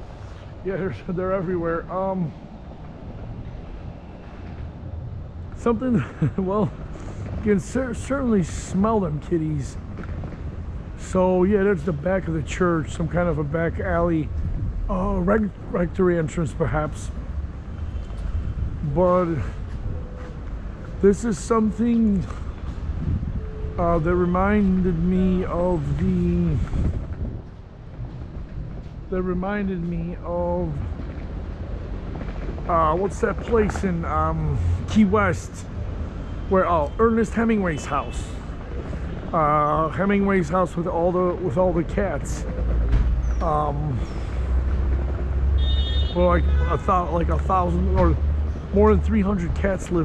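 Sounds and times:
wind buffeting microphone: 0.0s - 36.1s
faint outdoor background noise: 0.0s - 50.0s
wind on microphone: 14.2s - 15.7s, 22.1s - 29.3s.

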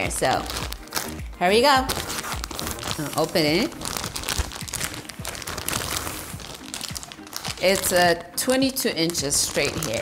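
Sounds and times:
plastic bag crinkling: 0.0s - 10.0s.

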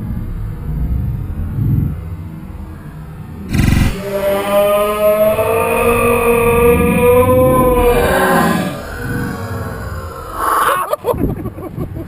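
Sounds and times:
long sagging pitched cry: 3.5s - 11.3s.

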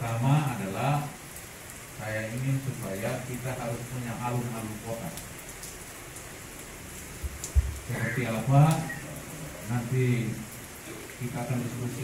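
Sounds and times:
rain on a metal roof: 0.0s - 12.0s.

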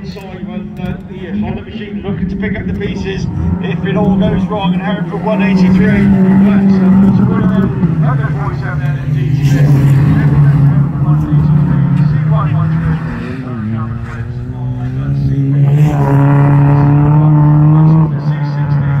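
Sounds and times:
race car engines at high revs: 0.0s - 19.0s.

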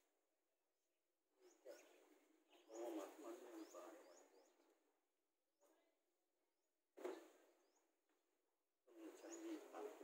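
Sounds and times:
small bird chirping: 1.3s - 5.0s, 8.9s - 10.0s.

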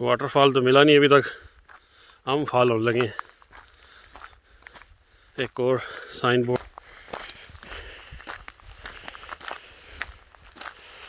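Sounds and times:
footsteps on gravel: 0.4s - 11.0s
person speaking: 2.3s - 3.3s, 5.4s - 6.7s.

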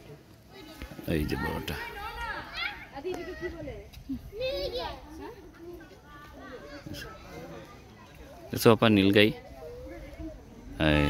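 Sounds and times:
children chattering and calling out: 0.0s - 11.0s.

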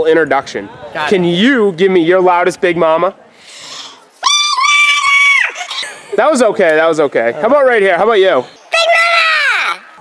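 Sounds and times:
boy yelling: 8.7s - 10.0s.

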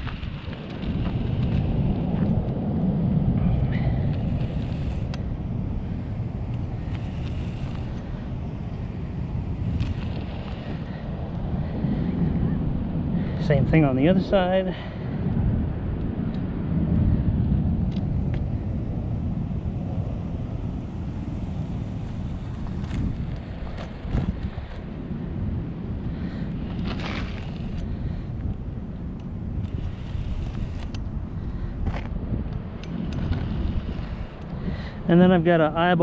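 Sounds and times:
wind rumbling on microphone: 0.0s - 36.0s.

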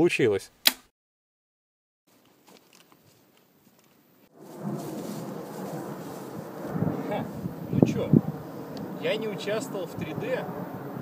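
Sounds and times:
wind buffeting microphone: 4.4s - 11.0s.

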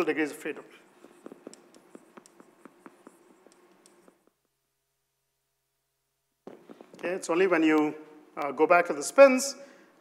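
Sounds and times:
chalk tapping and scratching: 0.0s - 4.4s.

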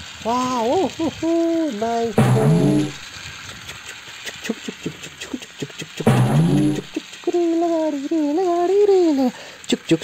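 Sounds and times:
short hissing burst: 2.1s - 3.7s.

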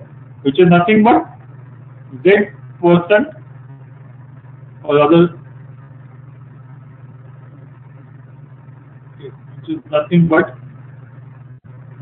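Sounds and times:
steady low hum: 0.0s - 12.0s
man speaking: 4.9s - 5.4s, 9.7s - 10.5s.

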